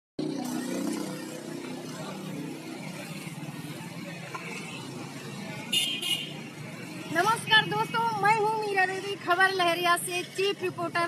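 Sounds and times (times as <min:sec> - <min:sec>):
motor traffic noise: 0:00.2 - 0:11.0
woman speaking: 0:07.1 - 0:11.0.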